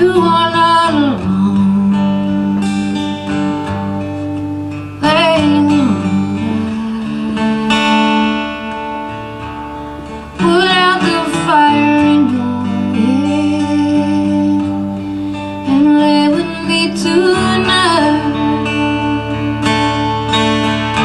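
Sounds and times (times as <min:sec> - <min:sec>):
strummed acoustic guitar: 0:00.0 - 0:21.0.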